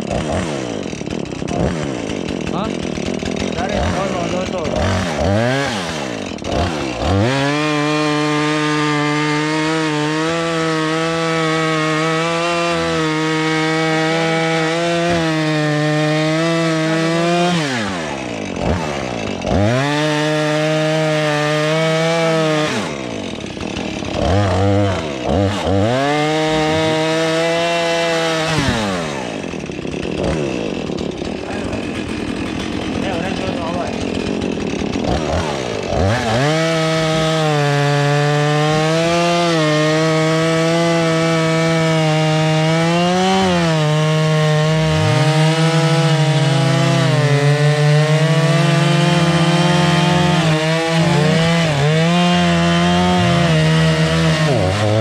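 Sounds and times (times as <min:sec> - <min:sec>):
chainsaw cutting logs: 0:00.0 - 0:55.0.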